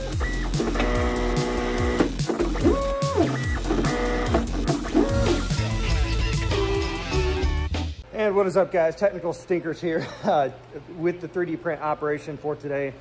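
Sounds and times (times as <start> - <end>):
stepper motor whines: 0.0 - 5.8
music with steady beat: 0.0 - 8.1.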